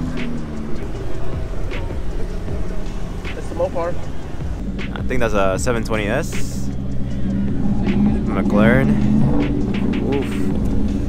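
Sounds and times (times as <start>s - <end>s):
car engine at low revs: 0.0s - 11.0s.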